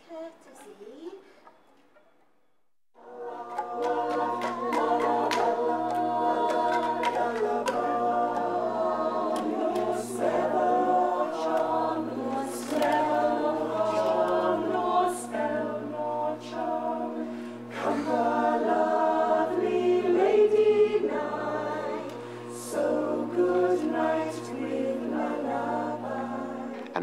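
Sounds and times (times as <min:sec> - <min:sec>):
choir singing: 0:03.0 - 0:27.0.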